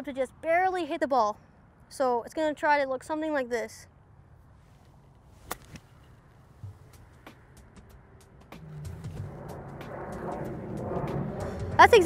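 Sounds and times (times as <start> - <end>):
golf club striking ball: 5.4 - 6.9.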